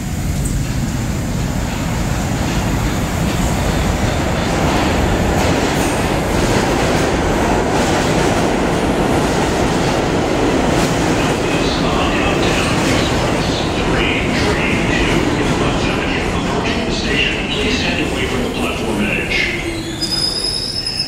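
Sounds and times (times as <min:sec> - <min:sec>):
subway train moving: 0:00.0 - 0:21.0.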